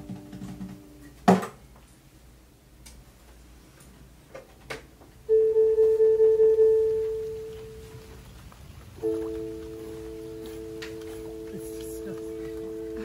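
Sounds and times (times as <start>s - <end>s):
held clear musical note: 5.3s - 8.2s, 9.0s - 13.0s.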